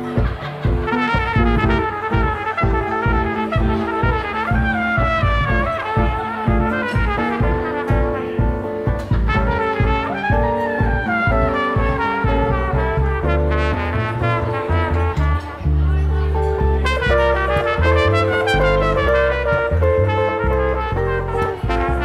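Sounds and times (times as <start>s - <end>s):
guitar chords: 0.0s - 22.0s
plucked double bass: 0.0s - 22.0s
trumpet melody: 0.0s - 22.0s.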